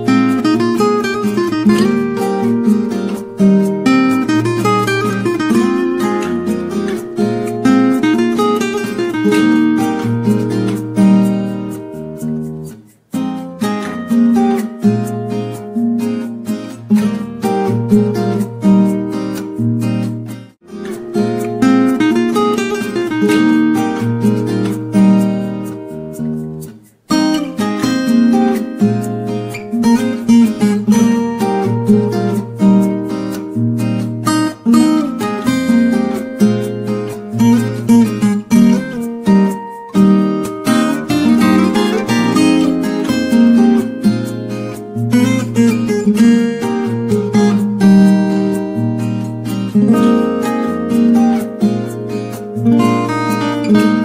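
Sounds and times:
acoustic guitar piece: 0.0 - 54.0.

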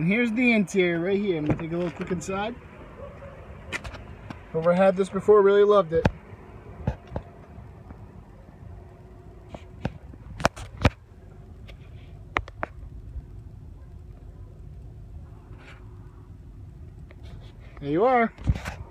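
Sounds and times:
car cabin hum: 0.0 - 17.2
sharp clicks and knocks: 6.8 - 8.0, 11.6 - 12.9.

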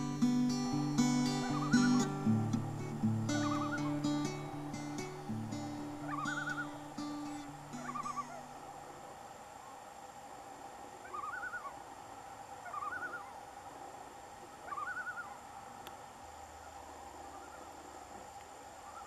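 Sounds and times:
guitar music: 0.0 - 8.6
loon tremolo call: 0.0 - 8.7.

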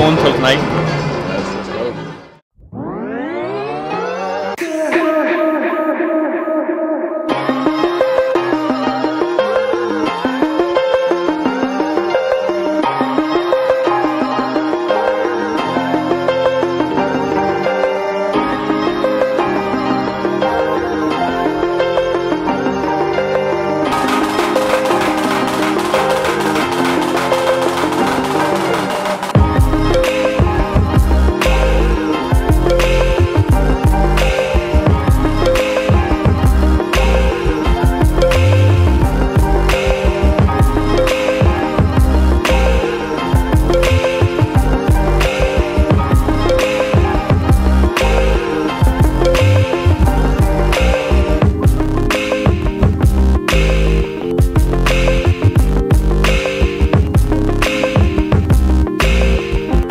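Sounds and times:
rising synth swell: 0.0 - 5.1
background music: 0.0 - 59.9
snare drum roll: 23.9 - 29.4
deep bass beat: 24.0 - 42.8, 43.4 - 59.9.

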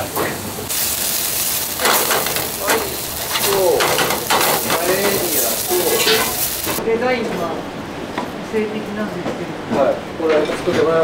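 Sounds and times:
scallops sizzling in a frying pan: 0.0 - 6.8.

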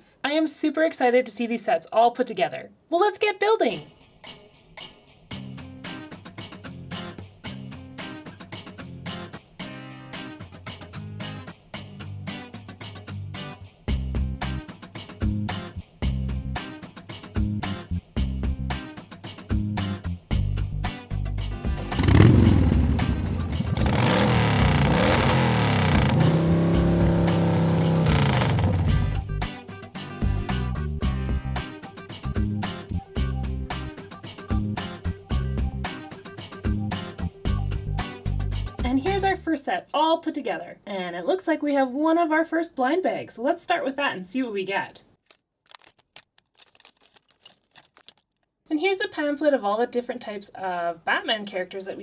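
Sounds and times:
motorcycle engine revving: 21.6 - 29.2
small plastic pieces clicking: 45.2 - 48.5
plastic packet crinkling: 45.2 - 48.6.

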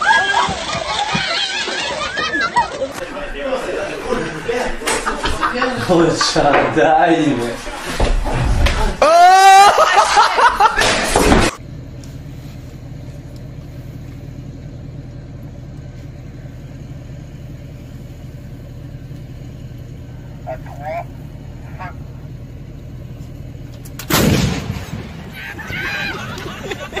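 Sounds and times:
distant shouts: 0.0 - 4.7, 8.9 - 10.2, 19.4 - 23.0, 25.2 - 27.0
low engine hum: 11.5 - 27.0
howitzer firing blast: 24.0 - 25.7.

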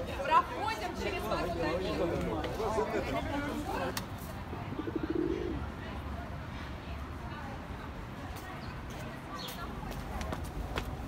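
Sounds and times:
pigeon cooing: 4.6 - 5.7.

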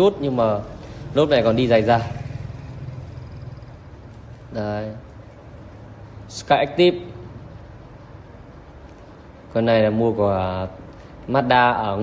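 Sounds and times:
car engine idling: 0.0 - 9.4.

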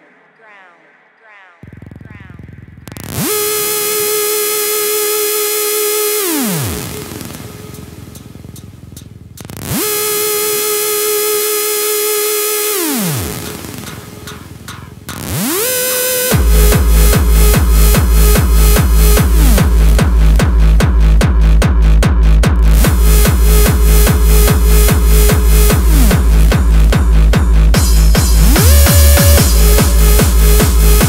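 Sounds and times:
buzzy synth lead swooping: 3.0 - 21.2, 22.6 - 31.0.

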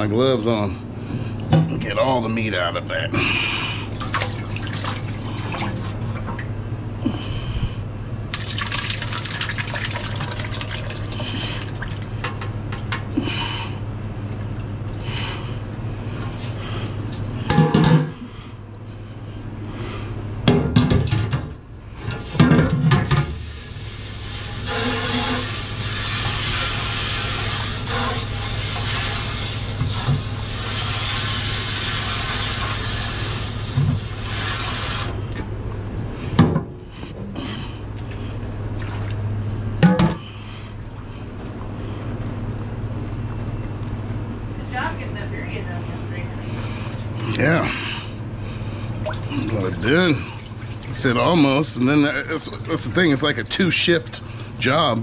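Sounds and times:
steady low hum: 0.0 - 34.4, 35.0 - 55.0
liquid pouring through strainer: 8.3 - 12.2.

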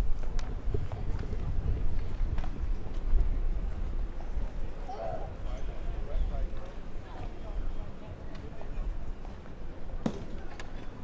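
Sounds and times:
footsteps on stone paving: 0.0 - 4.9
murmur of passers-by talking: 0.0 - 11.0.

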